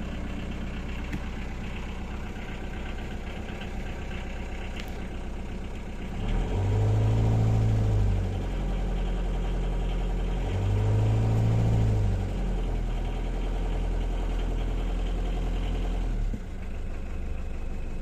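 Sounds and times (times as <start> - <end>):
diesel engine idling and revving: 0.0 - 18.0.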